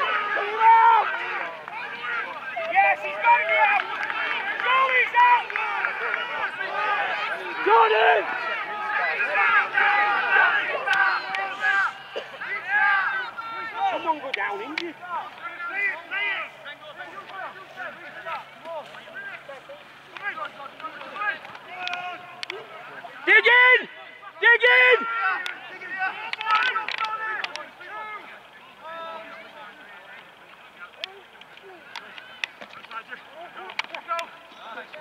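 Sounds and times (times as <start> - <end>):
players and spectators shouting: 0.0 - 35.0.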